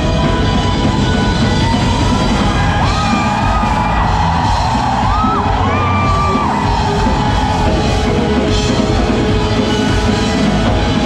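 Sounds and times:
rock band playing live: 0:00.0 - 0:11.0.

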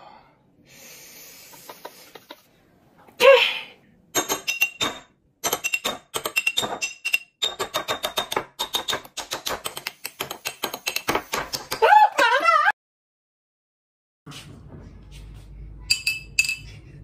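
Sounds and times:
spoon tapping glass bottle: 0:15.9 - 0:16.8.

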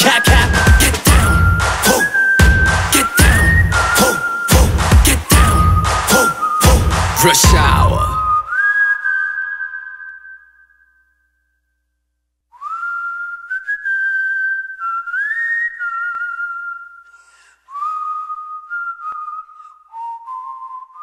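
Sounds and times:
sliding high whistle tones: 0:00.0 - 0:11.5, 0:12.6 - 0:21.0.

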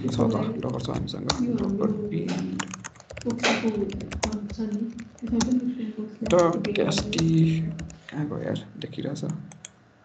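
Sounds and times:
computer keyboard typing: 0:00.0 - 0:08.1, 0:09.1 - 0:09.8.

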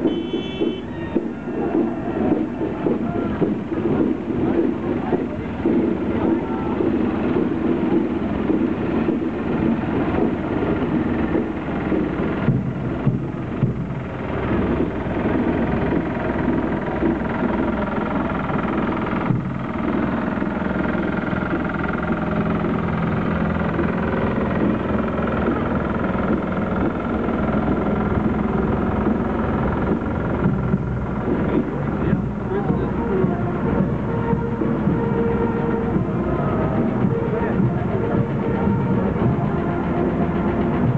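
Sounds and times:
crowd chatter: 0:00.0 - 0:40.9
garden tractor engine running: 0:00.0 - 0:40.9
steady held note: 0:14.4 - 0:40.9.

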